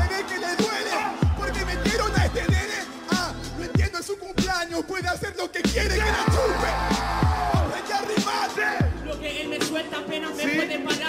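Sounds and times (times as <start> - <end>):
rapping over a hip hop beat: 0.0 - 11.0
deep kick drums: 1.2 - 2.6, 6.3 - 7.7, 8.8 - 9.2.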